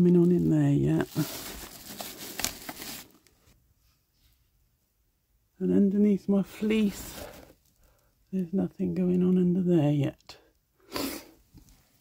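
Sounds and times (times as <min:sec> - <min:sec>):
bubble wrap crinkling: 0:00.0 - 0:03.6.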